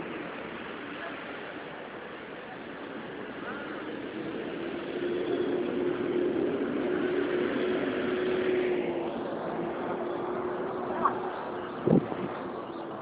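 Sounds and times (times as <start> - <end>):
traffic rush: 0.0 - 13.0.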